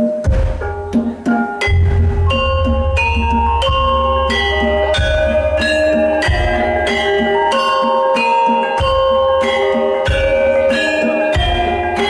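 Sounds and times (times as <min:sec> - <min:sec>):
gamelan metallophones ringing: 0:00.0 - 0:12.0
deep low gong stroke: 0:01.6 - 0:06.9.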